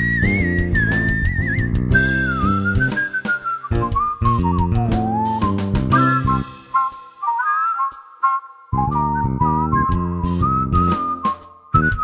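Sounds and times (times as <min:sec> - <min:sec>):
instrumental backing track: 0:00.0 - 0:12.0
whistled melody: 0:00.0 - 0:12.0.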